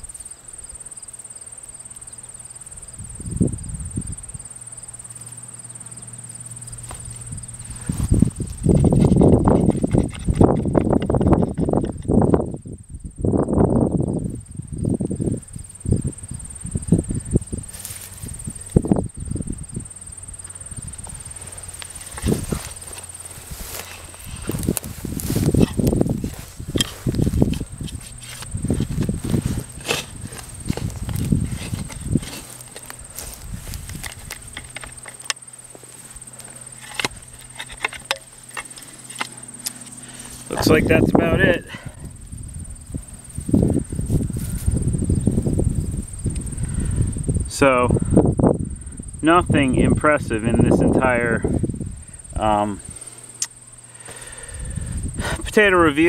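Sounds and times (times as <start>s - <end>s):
hands scraping through dirt: 6.8s - 12.1s, 17.7s - 18.8s, 21.0s - 41.7s
digging fork thudding into soil: 21.0s - 35.8s, 36.4s - 41.0s.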